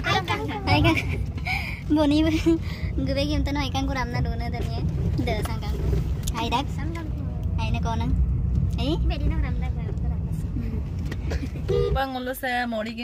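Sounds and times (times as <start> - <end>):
people talking: 0.0 - 1.3, 1.9 - 8.1, 11.9 - 13.0
car cabin rumble: 0.0 - 13.0.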